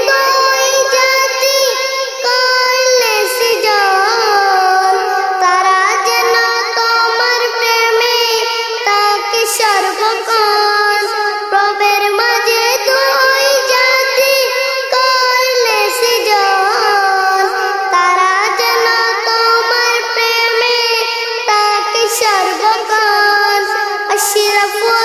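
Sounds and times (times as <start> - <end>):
boy singing solo: 0.0 - 25.0.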